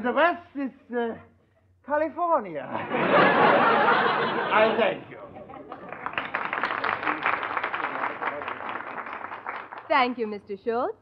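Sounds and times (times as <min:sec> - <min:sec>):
audience applauding: 0:05.6 - 0:10.1.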